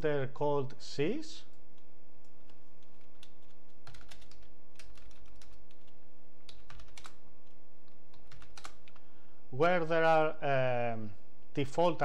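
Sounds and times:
steady background hum: 0.0 - 12.0
computer keyboard typing: 1.8 - 9.0.

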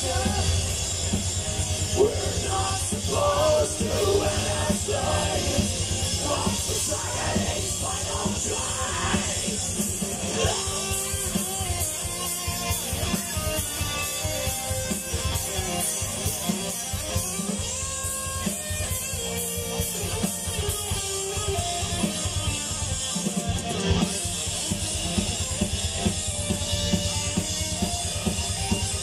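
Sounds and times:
distorted electric guitars: 0.0 - 29.0
fast drum kit beat: 0.0 - 29.0.

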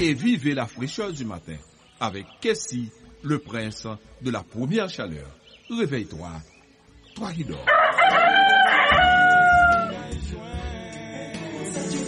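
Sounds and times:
background music: 0.0 - 12.0
rooster crowing: 7.7 - 10.1.

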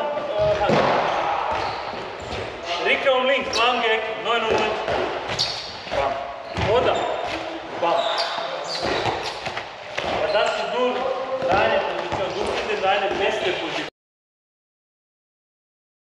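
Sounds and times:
voices talking: 0.0 - 13.9.

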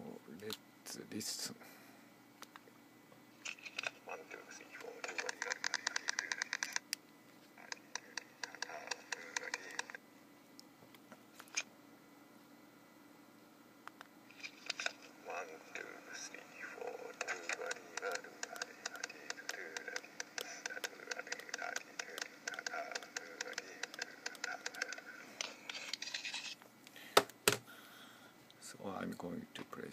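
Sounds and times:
person speaking: 4.0 - 6.8, 7.6 - 10.0, 14.7 - 26.2
sharp rhythmic taps: 5.0 - 7.0, 7.6 - 10.0, 17.1 - 25.2.

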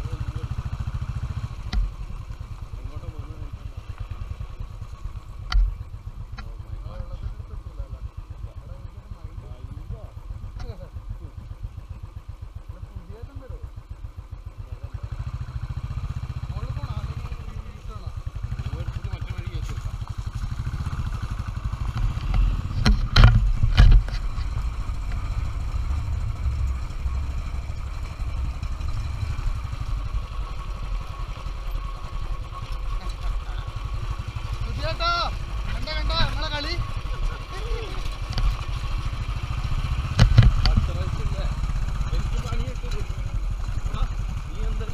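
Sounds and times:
motorcycle engine running: 0.0 - 44.9
motorcycle jolting knocks: 22.8 - 24.2.

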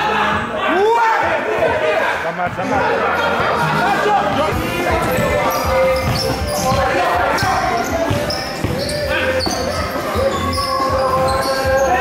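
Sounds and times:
players chattering in hall: 0.0 - 12.0
background music: 2.7 - 12.0
basketball bouncing on floor: 6.0 - 9.6.

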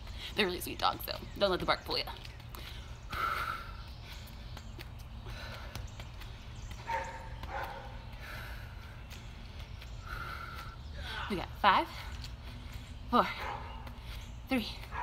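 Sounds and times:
dogs barking: 6.8 - 8.0, 13.4 - 13.8.

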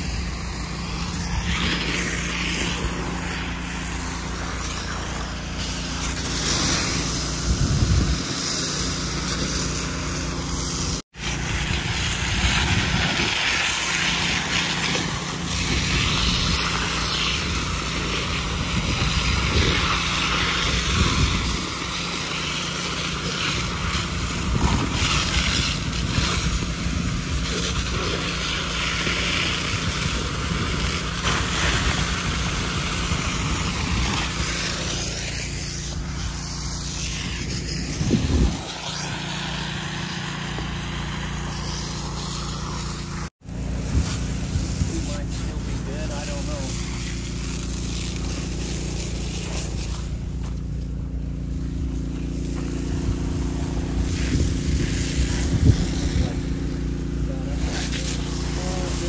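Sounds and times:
fire hose spraying water: 0.0 - 59.0.

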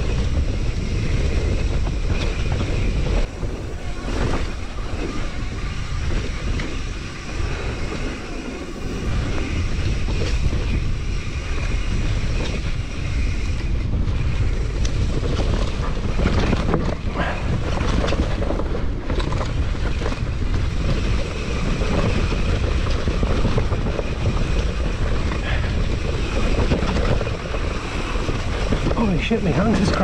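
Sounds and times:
bike clicks and rattles: 0.0 - 30.0
bike tyres rolling on dirt: 0.0 - 30.0
wind buffeting microphone: 0.0 - 30.0.

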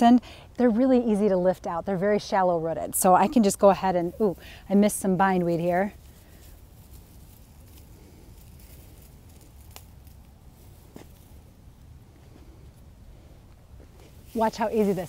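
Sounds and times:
hands pulling weeds: 3.3 - 11.5.

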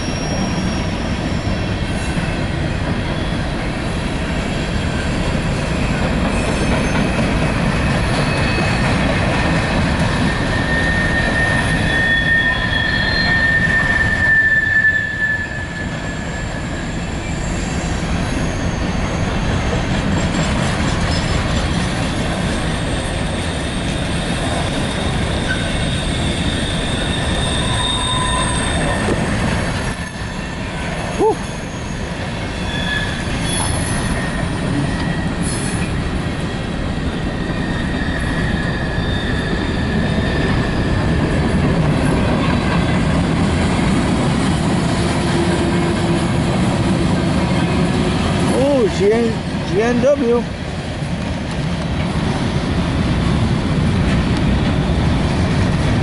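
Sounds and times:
high wheel squeals: 0.0 - 2.4, 6.3 - 43.0
train wheels rumbling on rail: 0.0 - 56.0.

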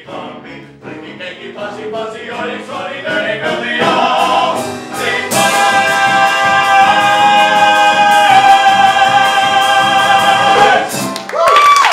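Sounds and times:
male vocal trio singing: 0.0 - 11.0
band accompaniment: 0.0 - 11.5
steady drum beat: 3.5 - 11.2.

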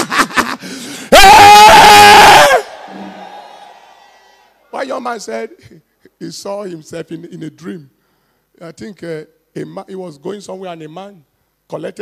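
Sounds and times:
person whooping: 1.1 - 3.5.

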